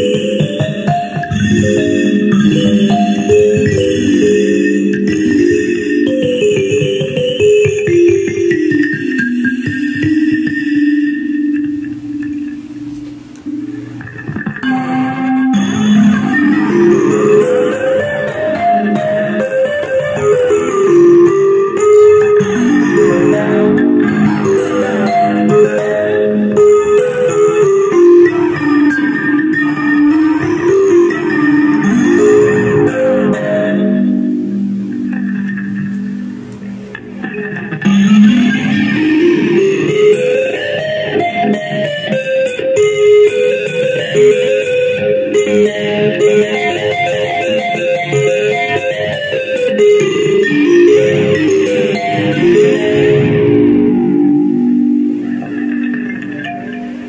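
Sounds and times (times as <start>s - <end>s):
gritty run of kalimba notes: 0.0s - 12.7s, 13.4s - 57.0s
electric kalimba plucked notes: 0.0s - 57.0s.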